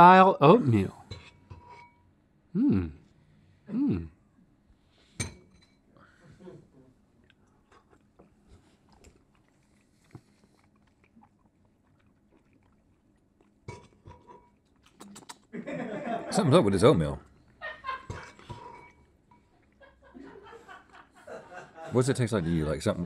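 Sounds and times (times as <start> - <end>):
metal spoons scraping ceramic bowls: 1.0 - 2.1, 18.1 - 19.5
soft mouth sounds: 2.5 - 4.3, 7.2 - 15.5.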